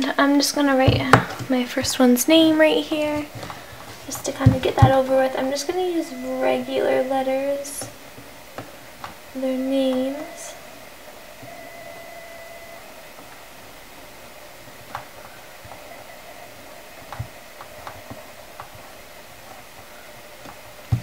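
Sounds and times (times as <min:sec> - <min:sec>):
room hiss: 0:00.0 - 0:21.0.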